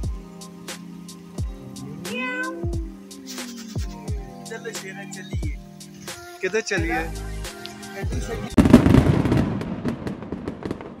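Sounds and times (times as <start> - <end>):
dense crackle of sharp pops: 8.6 - 11.0.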